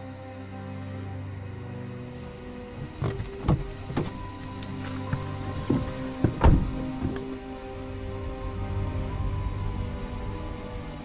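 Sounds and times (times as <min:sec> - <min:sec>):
eerie film score: 0:00.0 - 0:11.0
knocks and thumps on a car: 0:02.8 - 0:04.2, 0:05.1 - 0:07.2.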